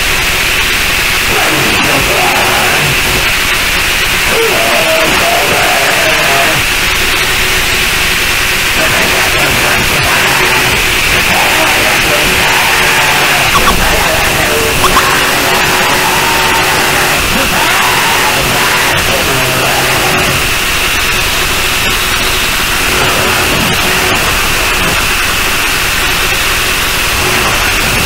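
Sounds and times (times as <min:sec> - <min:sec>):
distorted static noise music: 0:00.0 - 0:28.0
wavering higher tones: 0:13.6 - 0:15.6
steady low tone: 0:13.6 - 0:16.0.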